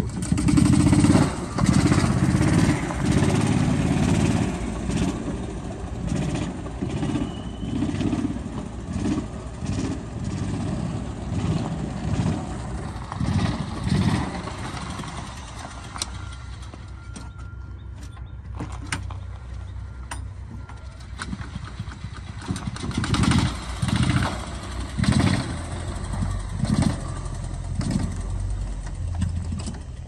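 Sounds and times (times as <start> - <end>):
utility vehicle engine surging: 0.0 - 18.3, 19.1 - 30.0.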